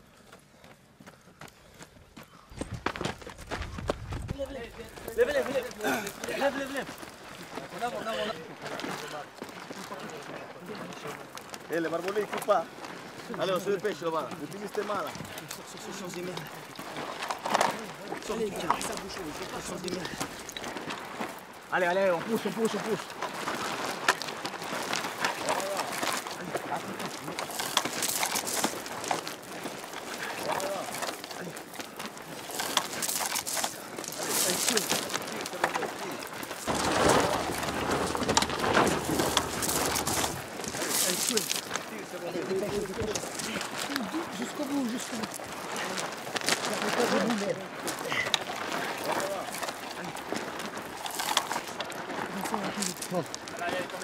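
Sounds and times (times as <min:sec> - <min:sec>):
scraping and scuffing of gravel: 0:03.1 - 0:54.0.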